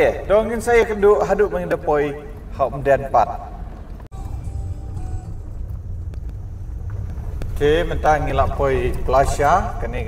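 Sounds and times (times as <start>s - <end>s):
car engine and road noise: 2.3s - 10.0s.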